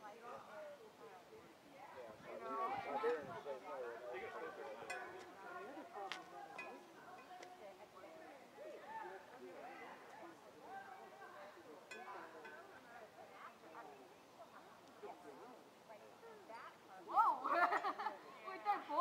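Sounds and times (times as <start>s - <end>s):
distant conversation: 0.0s - 19.0s.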